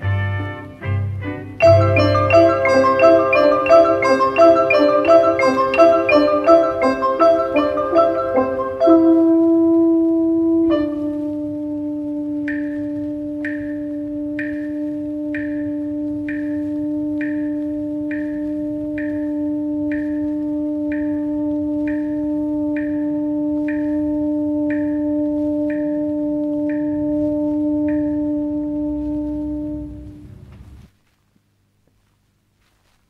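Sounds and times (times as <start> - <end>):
orchestra holding low note: 0.1 - 11.3.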